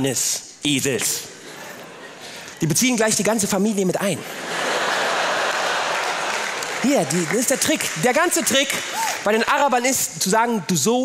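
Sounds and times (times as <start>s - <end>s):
comedian speaking: 2.6s - 4.4s, 6.8s - 11.0s
audience applauding: 4.6s - 9.7s.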